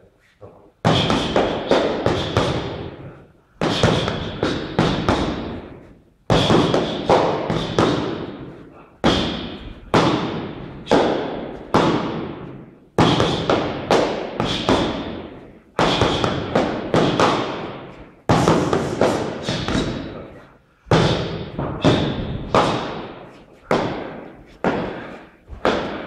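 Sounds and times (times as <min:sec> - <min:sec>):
boxing gloves striking pads: 0:00.8 - 0:20.3, 0:20.9 - 0:26.0.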